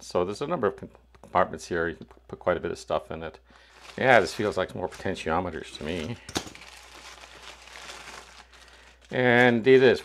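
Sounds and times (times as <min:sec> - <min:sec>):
plastic mailer crinkling: 0:03.6 - 0:10.0.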